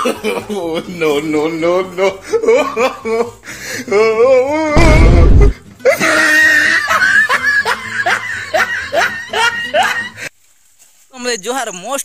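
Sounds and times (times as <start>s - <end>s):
person laughing loudly: 0.0s - 10.2s.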